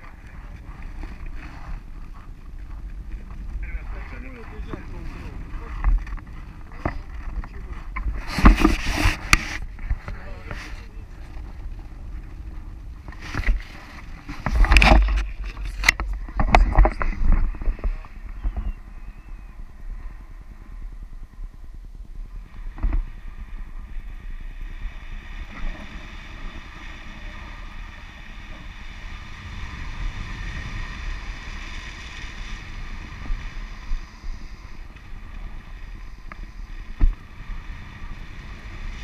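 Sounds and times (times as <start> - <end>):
wind rushing over microphone: 0.0 - 39.0
camera handling knocks and rustles: 5.8 - 10.2, 14.3 - 18.7.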